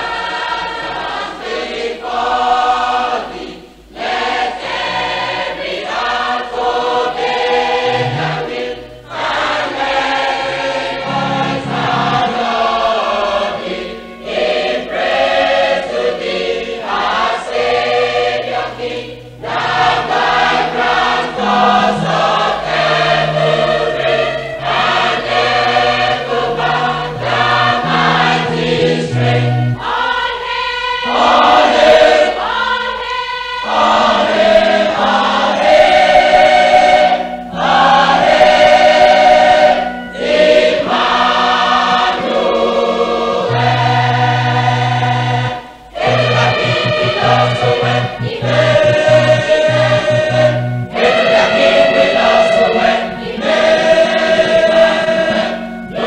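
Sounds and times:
choir singing gospel: 0.0s - 56.0s
sustained low bass notes: 7.8s - 8.8s, 11.0s - 12.4s, 19.4s - 29.8s, 43.5s - 56.0s.

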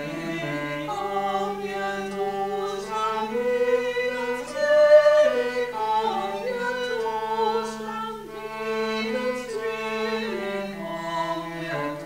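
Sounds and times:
bowed cellos: 0.0s - 12.0s
women's choir singing: 0.0s - 12.0s.

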